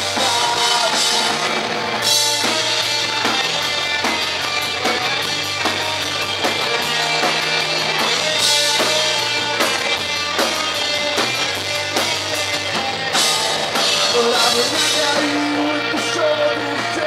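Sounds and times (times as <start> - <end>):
drum kit with cymbals: 0.0 - 17.0
electric guitar: 0.0 - 17.0
keyboard: 0.0 - 17.0
punk rock band playing: 0.0 - 17.0.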